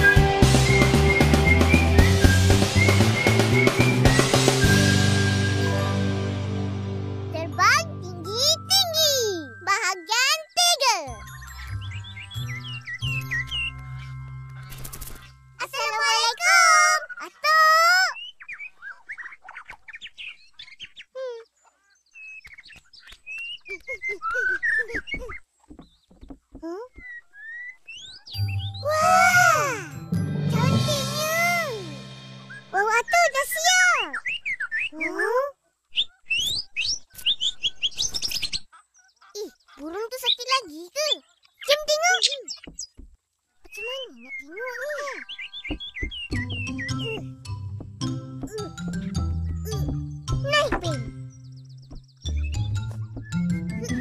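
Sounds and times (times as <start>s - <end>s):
background music with held notes: 0.0s - 16.0s, 28.3s - 32.8s, 45.2s - 54.0s
cartoon birds chirping: 7.4s - 26.3s, 26.9s - 54.0s.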